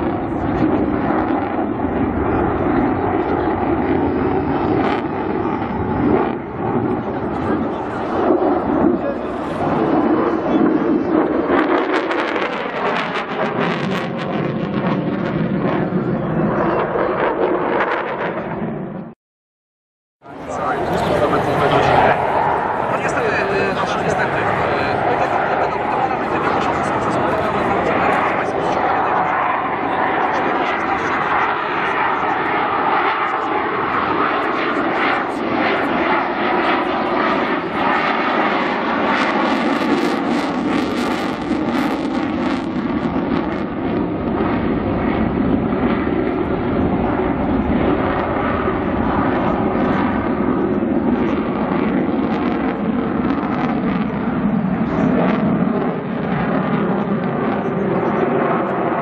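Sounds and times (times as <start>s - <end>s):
jet engine roar: 0.0s - 19.2s, 20.2s - 59.0s.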